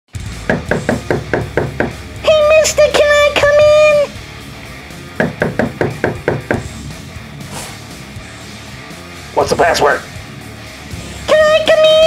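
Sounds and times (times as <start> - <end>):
rapid knocking on door: 0.4 - 2.0, 5.2 - 6.8.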